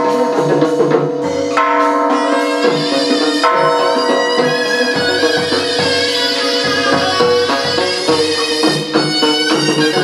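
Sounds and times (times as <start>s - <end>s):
ritual music with lute and percussion: 0.0s - 10.0s
struck beat: 1.1s - 10.0s.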